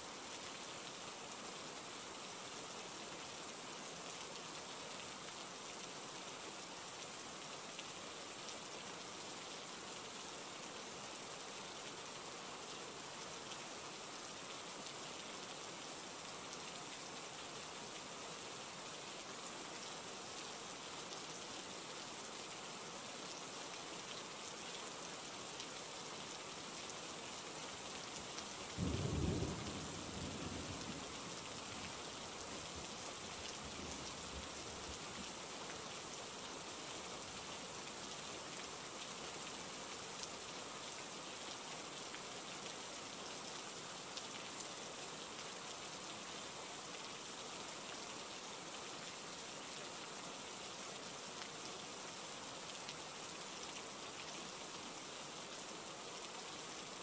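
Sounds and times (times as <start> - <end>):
steady rain falling: 0.0 - 57.0
low rumble of thunder: 28.8 - 31.3.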